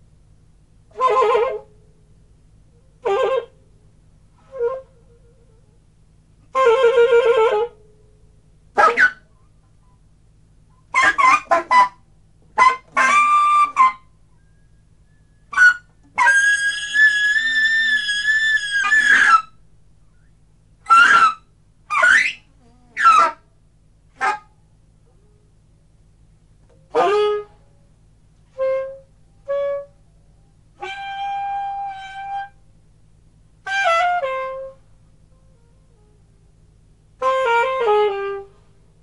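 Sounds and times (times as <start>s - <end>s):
solo saxophone squeals: 0.9s - 1.7s, 2.8s - 3.6s, 4.3s - 5.9s, 6.5s - 7.8s, 8.8s - 10.0s, 10.8s - 12.0s, 12.6s - 23.5s, 26.9s - 27.6s, 30.8s - 32.6s, 33.6s - 34.8s, 37.2s - 38.6s.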